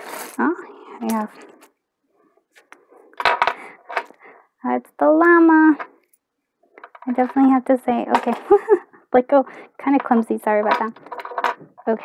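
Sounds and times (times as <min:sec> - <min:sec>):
small objects clicking on wooden table: 0:03.2 - 0:04.2, 0:06.7 - 0:07.4, 0:09.9 - 0:11.7.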